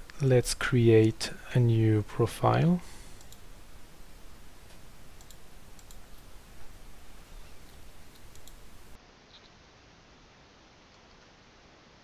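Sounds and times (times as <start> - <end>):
low background noise: 0.0 - 12.0
computer mouse clicks: 3.2 - 3.5, 4.7 - 6.3, 7.6 - 8.7.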